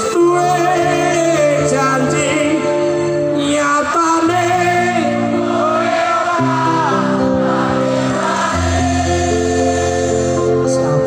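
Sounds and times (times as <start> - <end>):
live band chords over pa: 0.0 - 11.0.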